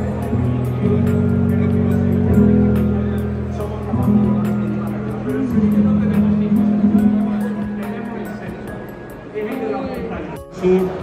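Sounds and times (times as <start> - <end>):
low sustained synthesizer notes: 0.0 - 9.9.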